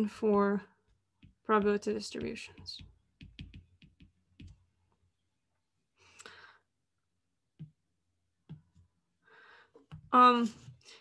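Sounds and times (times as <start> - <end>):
stylus tapping tablet screen: 0.0 - 5.2, 7.5 - 9.0.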